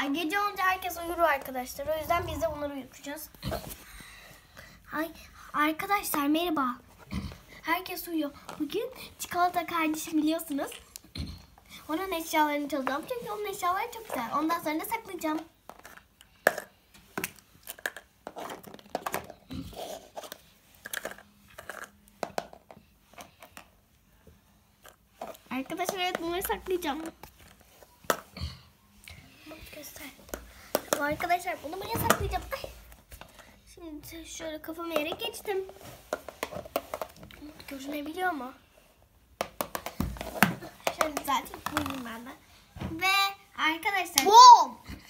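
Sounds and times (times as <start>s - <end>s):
plastic toys clicking and tapping: 15.3s - 23.7s, 24.8s - 28.3s, 30.2s - 32.6s, 39.4s - 42.2s
toys tapped on laminate floor: 39.4s - 42.0s.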